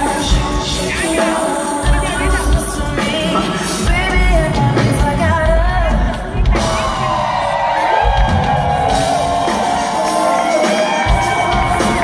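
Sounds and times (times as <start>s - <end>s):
woman singing into a microphone: 0.0s - 7.1s
band with drums and bass: 0.0s - 12.0s.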